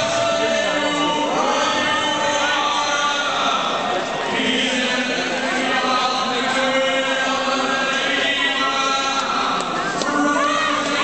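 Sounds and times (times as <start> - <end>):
chant-like voice over loudspeakers: 0.0 - 11.0.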